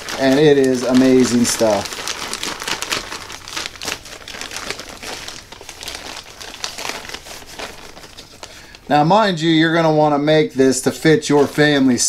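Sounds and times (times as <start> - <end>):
plastic bag crinkling: 0.0 - 9.1, 10.6 - 12.0.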